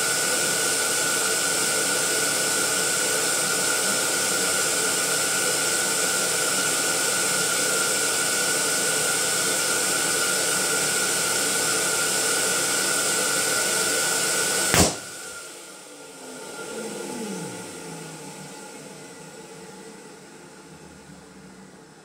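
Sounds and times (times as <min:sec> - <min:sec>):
balloon inflator whine: 0:00.0 - 0:22.0.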